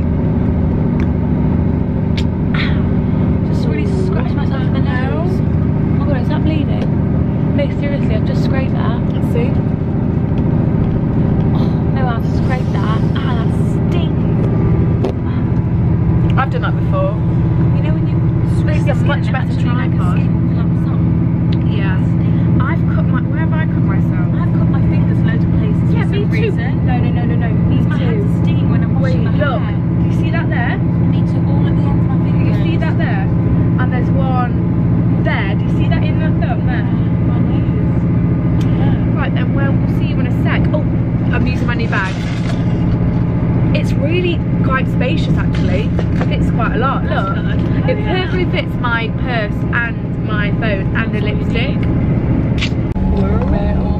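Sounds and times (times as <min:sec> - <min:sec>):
train rumbling inside carriage: 0:00.0 - 0:53.9.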